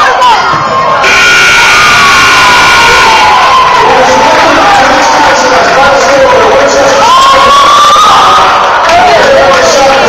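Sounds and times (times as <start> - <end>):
crowd cheering: 0.0 - 10.0
scoreboard horn blast: 1.0 - 3.1.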